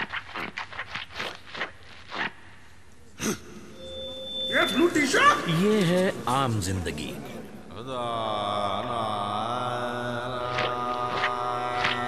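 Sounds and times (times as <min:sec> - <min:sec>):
deep male voice chanting: 0:07.7 - 0:12.0.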